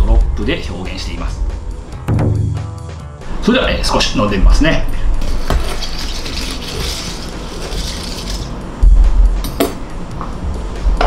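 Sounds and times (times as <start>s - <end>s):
straw stirring crushed ice in glass: 5.2s - 8.6s.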